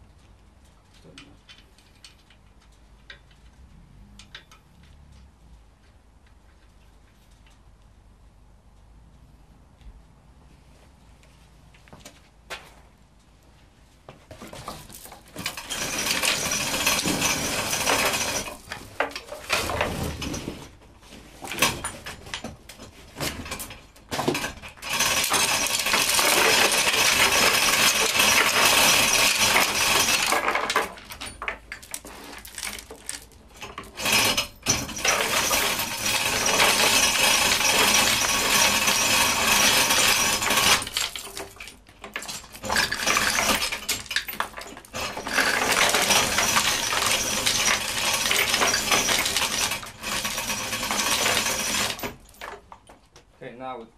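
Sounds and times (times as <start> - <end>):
hoist chain clinking and rattling: 14.4 - 20.6, 21.4 - 53.1.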